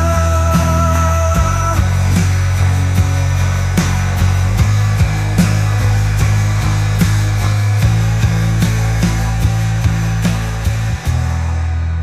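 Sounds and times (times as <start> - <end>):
drum hits: 0.0 - 11.8
distorted guitar and bass chords: 0.0 - 12.0.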